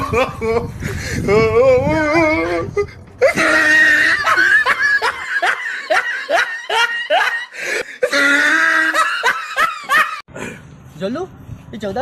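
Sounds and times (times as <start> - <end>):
person laughing loudly: 0.0 - 1.4, 3.2 - 10.2.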